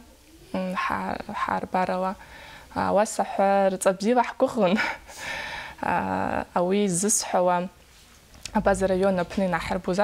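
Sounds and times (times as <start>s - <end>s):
person speaking: 8.4s - 10.0s.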